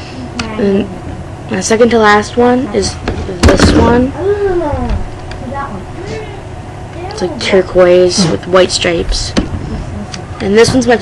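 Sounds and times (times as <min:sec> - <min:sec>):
girl humming: 0:04.2 - 0:07.2.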